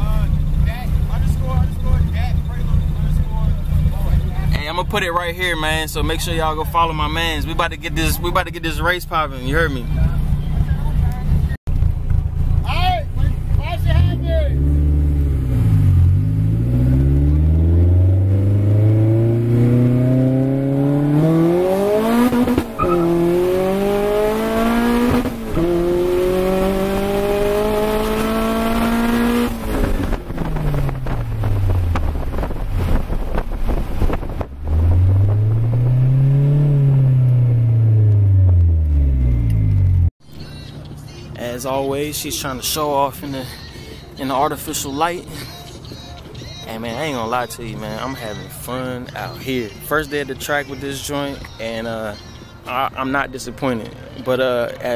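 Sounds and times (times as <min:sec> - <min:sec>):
turbocharged car engine accelerating: 0:00.0 - 0:40.1.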